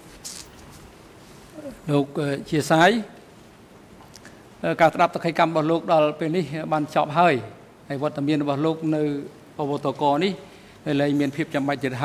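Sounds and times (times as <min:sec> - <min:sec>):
microphone hiss: 0:00.0 - 0:12.0
man speaking: 0:01.6 - 0:03.2, 0:04.6 - 0:12.0.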